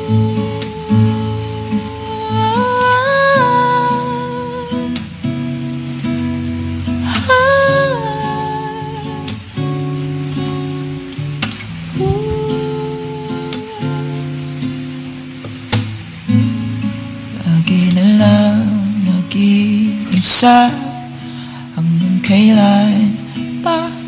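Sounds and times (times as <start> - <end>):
acoustic guitar chords: 0.0 - 24.0.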